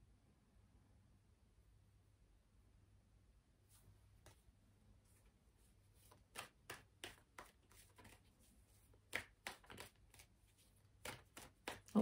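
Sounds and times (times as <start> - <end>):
cards clicking and slapping on table: 6.0 - 8.3, 8.9 - 12.0.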